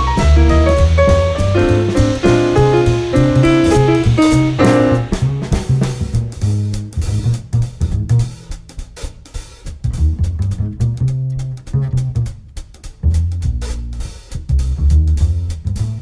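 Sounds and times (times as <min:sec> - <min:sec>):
plucked double bass: 0:00.0 - 0:08.4, 0:09.8 - 0:12.4, 0:13.0 - 0:16.0
live jazz quartet music: 0:00.0 - 0:08.5, 0:09.8 - 0:16.0
drum kit strokes: 0:00.0 - 0:16.0.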